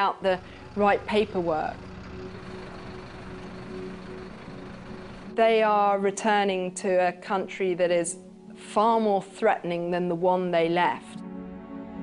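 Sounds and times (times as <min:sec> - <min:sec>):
street noise: 0:00.2 - 0:05.4
vehicle engine idling: 0:00.2 - 0:05.5.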